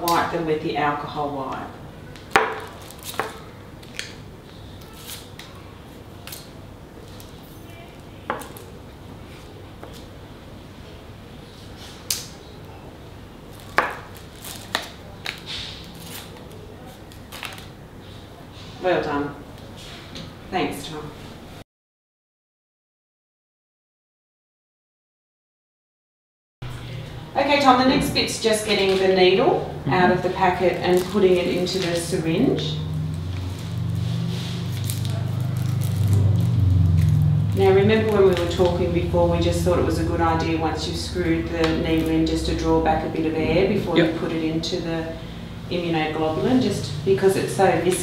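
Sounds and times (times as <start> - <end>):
paper and plastic crinkling: 2.6 - 4.0, 13.5 - 17.8, 33.4 - 36.5
low hum: 29.5 - 48.0
packet rustling: 33.4 - 36.5.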